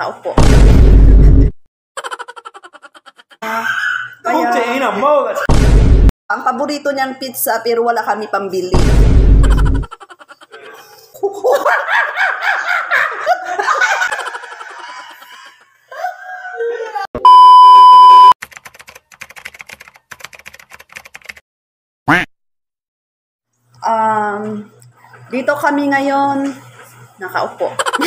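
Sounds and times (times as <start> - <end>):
people laughing: 2.0 - 3.4, 9.5 - 17.1, 27.7 - 28.0
high-pitched test-tone beep: 17.2 - 18.4.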